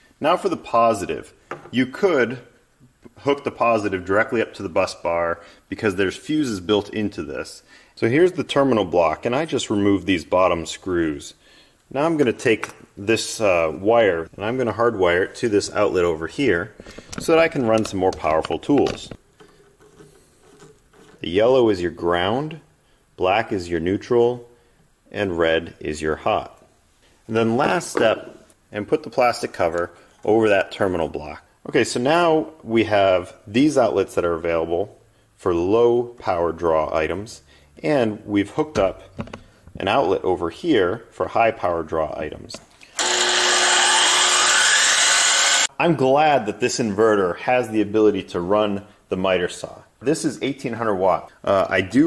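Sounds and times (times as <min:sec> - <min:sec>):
faint steady hum: 0:00.0 - 0:52.0
miter saw motor whine: 0:43.0 - 0:45.7.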